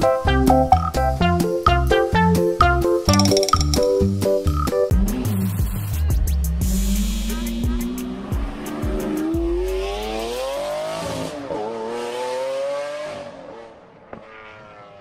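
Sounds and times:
car engine revving: 6.3 - 15.0.

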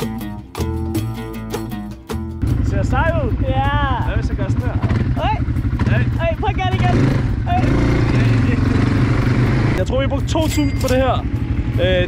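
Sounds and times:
quad bike engine pulsing: 2.4 - 12.0.

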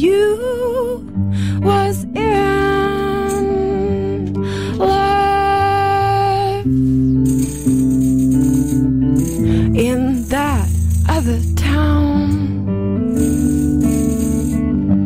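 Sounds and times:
acoustic guitars playing chords: 0.0 - 15.0
shaker rattling: 7.2 - 12.0, 13.1 - 14.7.

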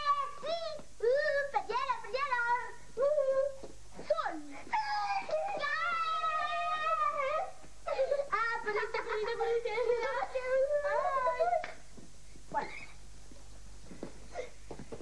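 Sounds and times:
children wailing: 4.7 - 8.6.

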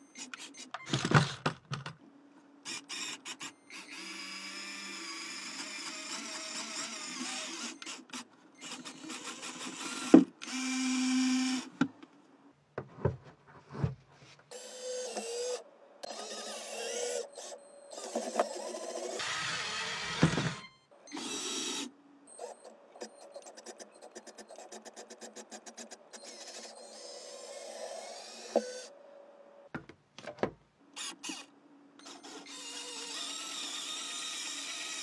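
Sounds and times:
small electric motors whining: 2.6 - 11.7, 14.5 - 29.0, 31.0 - 35.0.

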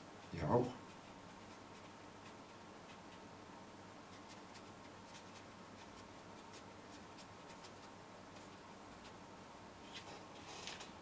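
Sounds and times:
brush scratching on paper: 0.2 - 3.2, 4.0 - 9.2.

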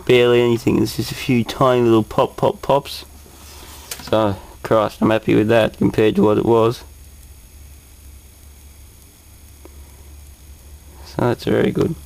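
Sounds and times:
faint high-pitched whine: 0.0 - 12.0
television low hum: 0.0 - 12.0
faint crackle tick: 8.4 - 10.4.

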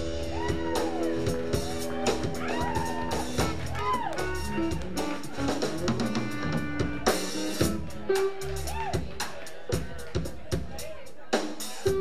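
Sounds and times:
electric bass: 0.0 - 10.3
electric guitars: 0.0 - 10.3
drum kit: 0.0 - 12.0.

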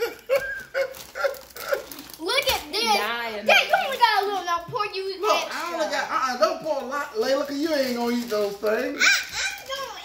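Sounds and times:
high-pitched laughter: 0.0 - 2.0.

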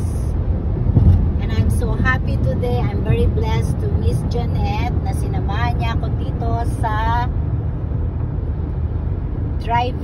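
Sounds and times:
car cabin road and engine rumble: 0.0 - 10.0.

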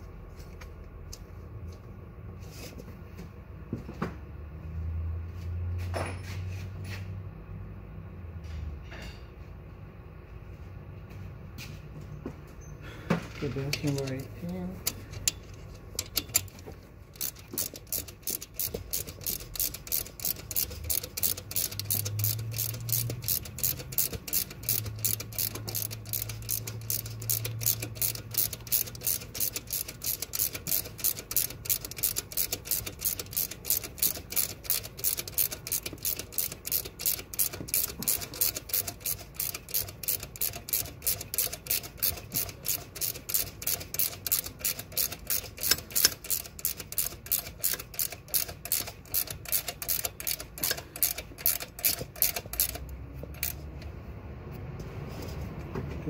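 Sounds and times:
ratchet wrench clicking: 13.6 - 53.9.

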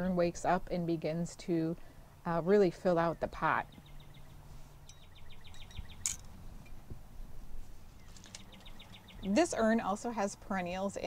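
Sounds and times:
songbird trilling: 3.6 - 6.3, 8.0 - 10.3.

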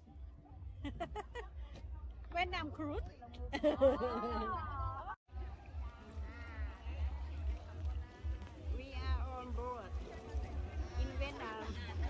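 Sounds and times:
voices calling and talking: 0.0 - 12.0.

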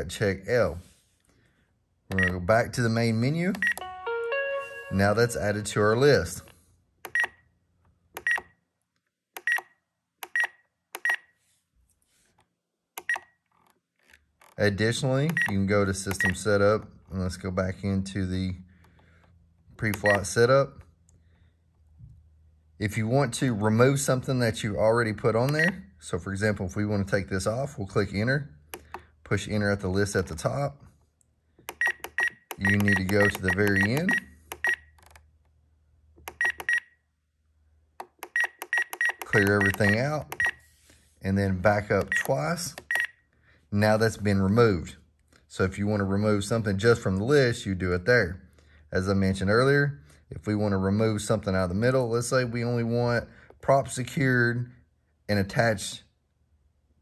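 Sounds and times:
high-pitched transmitter beeps: 31.7 - 34.8, 38.3 - 40.6.

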